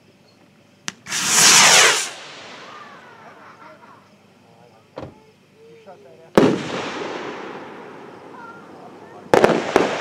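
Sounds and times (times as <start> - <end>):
firework rocket rushing hiss: 0.9 - 3.9, 6.4 - 10.0.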